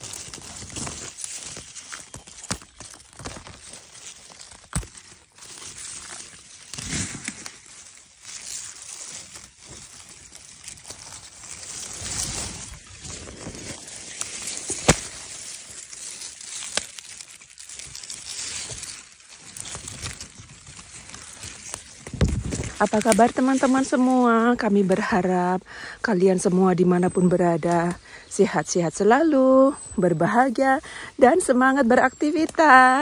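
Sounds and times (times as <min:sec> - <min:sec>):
stems snapping: 0:00.0 - 0:25.2
leaves rustling being picked: 0:00.0 - 0:33.0.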